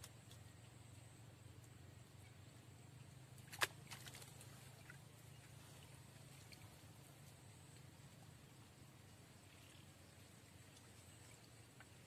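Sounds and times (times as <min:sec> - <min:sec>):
faint ticks: 0:00.0 - 0:01.8, 0:05.8 - 0:08.0, 0:09.5 - 0:12.0
faint low hum: 0:00.0 - 0:12.0
fishing line splashing into water: 0:03.4 - 0:05.0.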